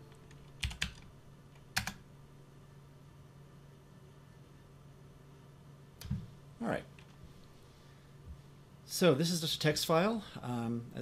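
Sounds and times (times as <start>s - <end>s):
faint low hum: 0.0s - 11.0s
computer keystroke: 0.3s - 1.1s.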